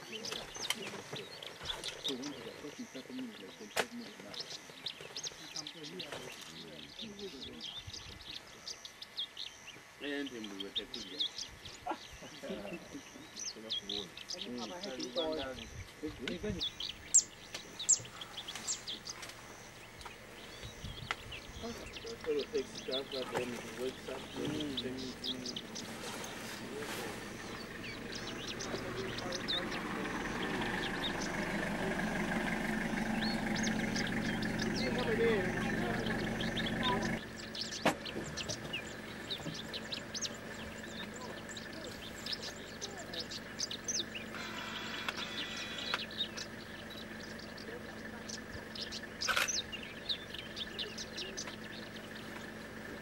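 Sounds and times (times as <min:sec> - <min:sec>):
sharp downward-sliding bird calls: 0:16.7 - 0:47.6.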